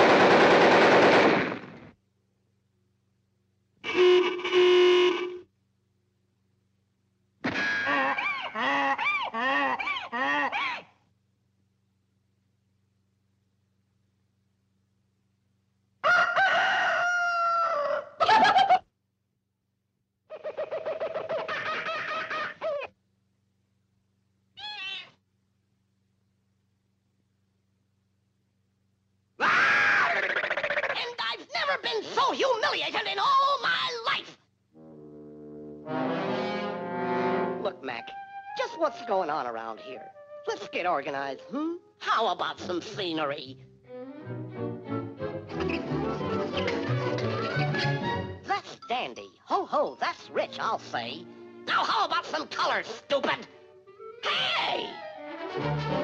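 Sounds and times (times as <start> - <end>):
distorted honk-like tone: 3.8 - 5.5
shrill cartoon voice yelling: 24.6 - 25.2, 29.4 - 34.4, 54.2 - 55.0.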